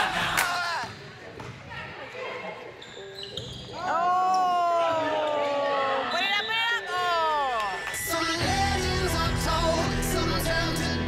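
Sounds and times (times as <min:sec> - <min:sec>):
shoes squeaking on gym court: 0:00.9 - 0:04.5.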